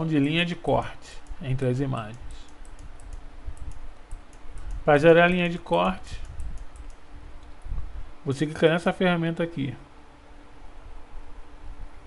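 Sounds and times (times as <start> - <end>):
low steady hum: 0.0 - 12.0
computer keyboard and mouse clicking: 1.2 - 5.0, 6.2 - 7.0.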